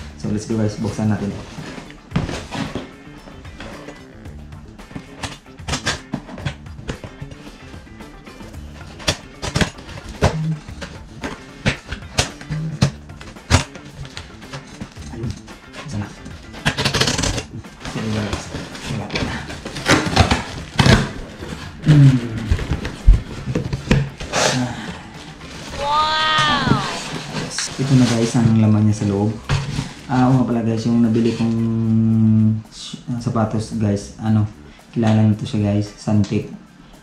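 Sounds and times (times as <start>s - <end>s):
quiet background music: 0.0s - 37.0s
knife cutting tape and cardboard: 8.9s - 18.4s.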